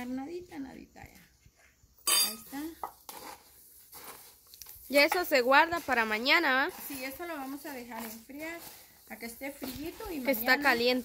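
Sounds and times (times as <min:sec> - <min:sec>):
woman speaking: 0:00.0 - 0:01.3, 0:04.9 - 0:11.0
wooden spoon scraping plastic tub: 0:05.0 - 0:11.0.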